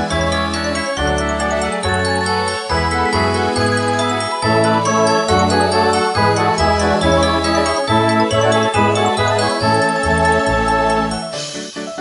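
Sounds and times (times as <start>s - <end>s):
orchestral music with piano: 0.0s - 12.0s.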